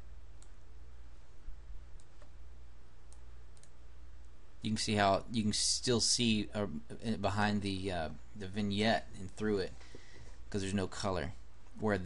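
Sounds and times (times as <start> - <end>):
steady low hum: 0.0 - 12.0
computer mouse clicking: 2.0 - 2.4, 3.1 - 3.8.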